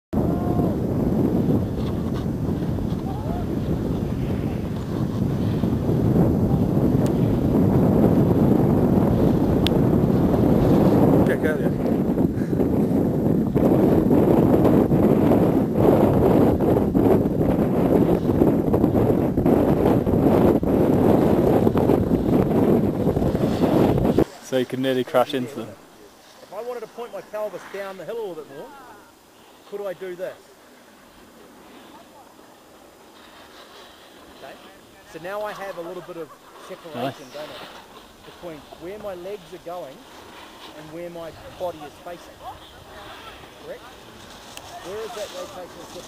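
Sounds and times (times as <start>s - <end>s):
wind on microphone: 0.1s - 26.1s, 31.1s - 46.0s.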